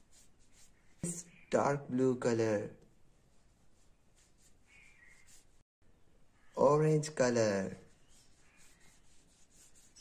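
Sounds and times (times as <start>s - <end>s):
paintbrush rubbing on paper: 0.0s - 1.5s, 3.0s - 5.7s, 7.5s - 10.0s.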